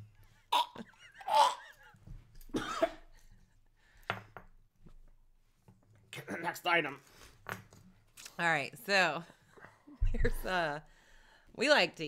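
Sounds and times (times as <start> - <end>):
man coughing and gagging: 0.5 - 3.3, 6.1 - 6.7.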